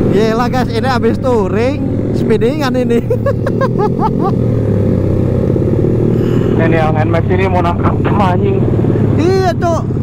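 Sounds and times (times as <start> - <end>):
scooter engine running: 0.0 - 10.0
wind and road noise: 0.0 - 10.0.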